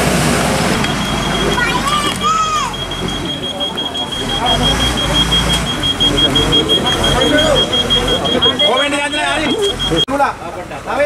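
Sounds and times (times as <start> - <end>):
truck engine running: 0.0 - 10.1
truck reversing alarm beeping: 0.6 - 10.1.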